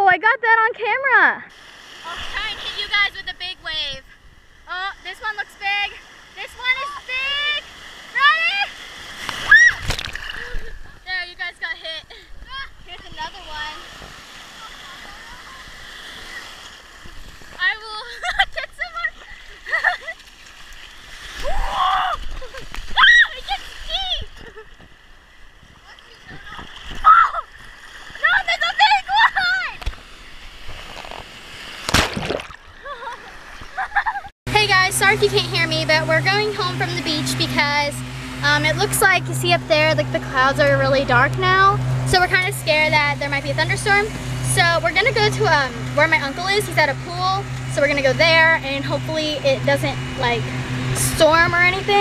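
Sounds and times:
water rushing over camera: 1.4s - 52.0s
ocean wave splashing: 1.5s - 52.0s
children squealing: 9.4s - 9.9s, 21.4s - 23.6s, 27.0s - 27.5s.

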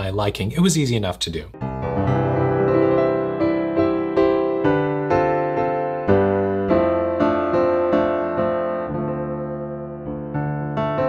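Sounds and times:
piano chords: 1.4s - 11.0s.

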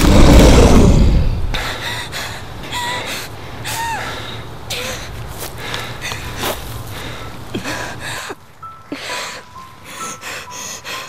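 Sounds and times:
deep rumbling boom: 0.0s - 1.6s.

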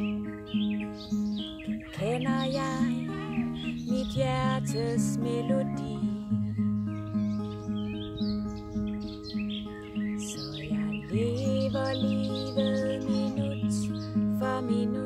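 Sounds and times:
acoustic guitar picking: 0.0s - 15.0s
birds chirping: 0.0s - 15.0s.

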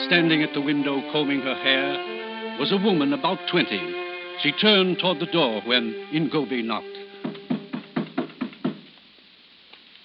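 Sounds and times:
knocking on a door: 7.2s - 8.9s.

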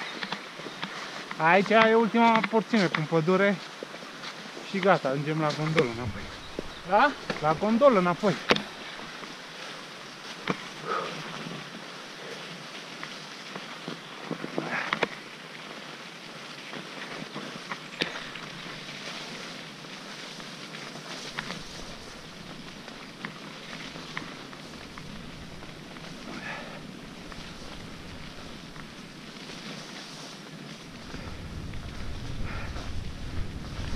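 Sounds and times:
bike tyres rolling on slush: 0.0s - 33.9s
wind noise: 4.5s - 11.7s, 21.2s - 33.9s.

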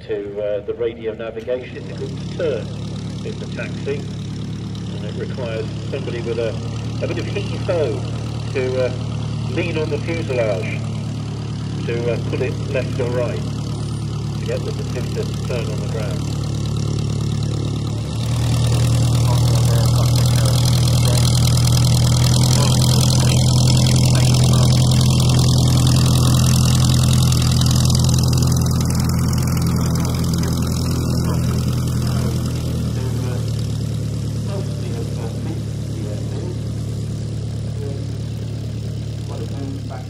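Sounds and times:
aircraft engine running: 0.0s - 40.0s.

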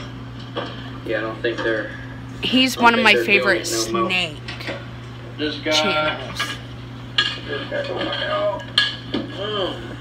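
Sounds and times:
steady low hum: 0.0s - 10.0s.

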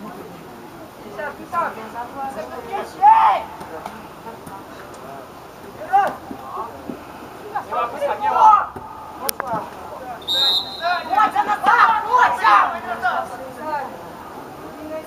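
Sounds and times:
players shouting: 2.6s - 3.8s, 7.5s - 13.8s
referee's whistle blast: 10.2s - 11.2s.

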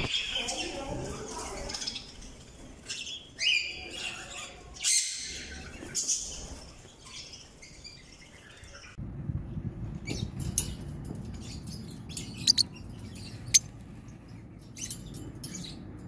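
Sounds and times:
budgerigars chirping and squawking: 2.8s - 8.9s, 11.5s - 13.7s
low steady rumble: 9.0s - 14.7s.

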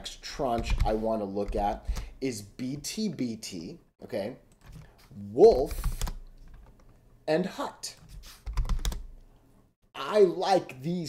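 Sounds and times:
keyboard typing: 0.6s - 2.1s, 5.6s - 7.0s, 8.4s - 9.1s.

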